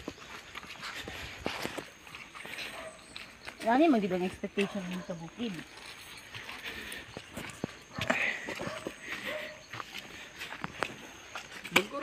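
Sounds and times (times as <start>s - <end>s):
faint outdoor hush: 0.0s - 12.0s
footsteps on dirt trail: 0.0s - 12.0s.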